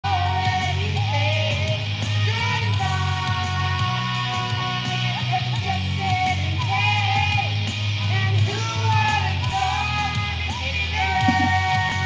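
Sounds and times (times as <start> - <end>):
person singing into a microphone: 0.0 - 12.0
rock backing track: 0.1 - 12.0.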